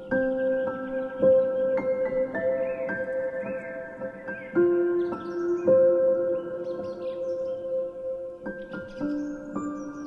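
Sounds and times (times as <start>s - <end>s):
faint birdsong chirps: 0.0s - 10.0s.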